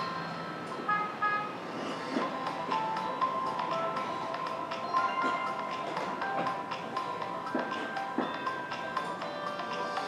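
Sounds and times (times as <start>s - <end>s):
background music with tapping beat: 2.1s - 10.0s.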